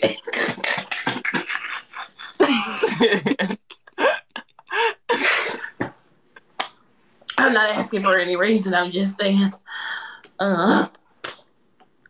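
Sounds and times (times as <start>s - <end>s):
people laughing: 1.1s - 5.2s.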